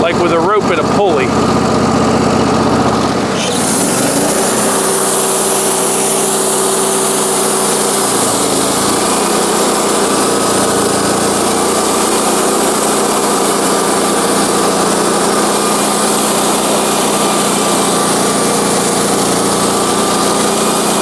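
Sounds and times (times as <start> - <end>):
band sawmill engine running: 0.0 - 21.0
band blade cutting log: 2.8 - 21.0.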